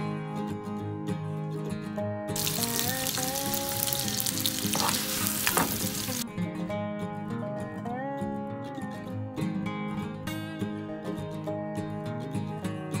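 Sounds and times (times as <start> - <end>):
food sizzling in a pan: 2.4 - 6.2.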